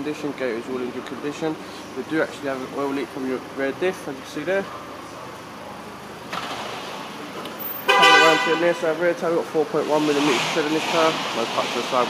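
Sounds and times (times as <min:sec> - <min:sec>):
background noise: 0:00.0 - 0:12.0
loud horn-like tone: 0:07.8 - 0:08.8.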